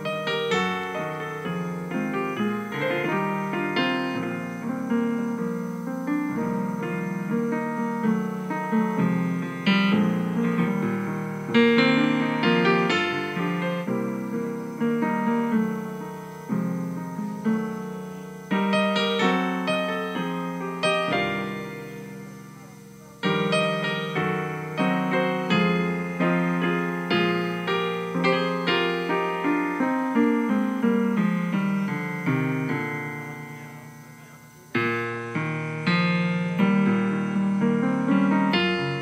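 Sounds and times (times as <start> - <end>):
slow piano ballad: 0.0 - 39.0.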